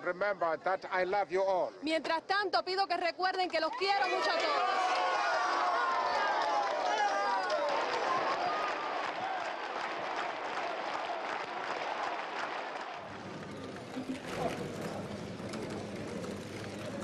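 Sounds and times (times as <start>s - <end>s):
crowd clapping: 3.4s - 17.0s
crowd shouting: 3.7s - 13.3s.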